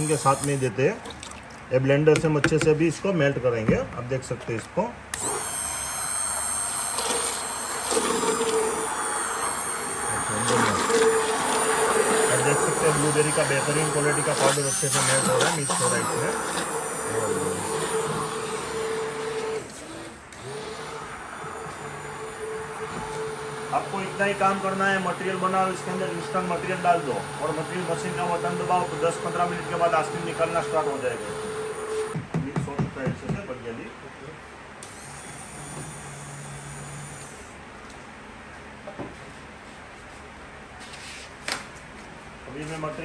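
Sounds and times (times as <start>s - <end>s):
hand blender motor hum: 0.0s - 0.6s, 5.2s - 32.2s.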